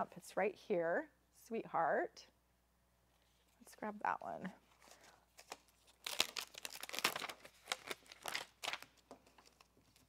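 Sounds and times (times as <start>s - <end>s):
plastic sheet crinkling: 4.6s - 10.0s.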